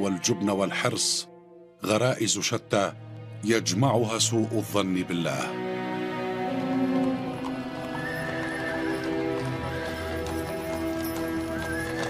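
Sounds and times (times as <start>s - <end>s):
film score of held notes: 0.0s - 12.0s
horse hooves: 6.0s - 12.0s
horses neighing: 6.4s - 10.3s.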